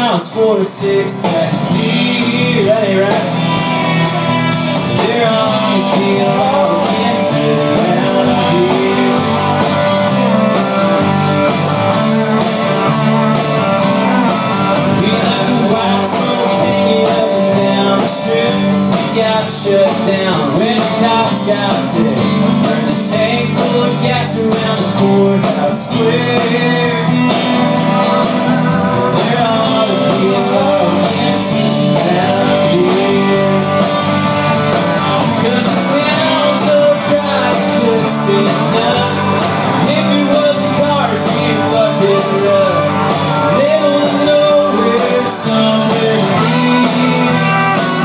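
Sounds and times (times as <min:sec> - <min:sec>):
acoustic and electric guitars: 0:00.0 - 0:48.0
country rock band playing: 0:00.0 - 0:48.0
drum kit steady beat: 0:00.0 - 0:48.0.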